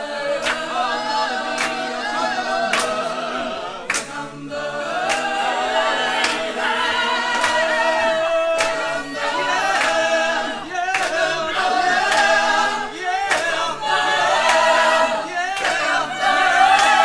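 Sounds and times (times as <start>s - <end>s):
a cappella group singing: 0.0s - 17.0s.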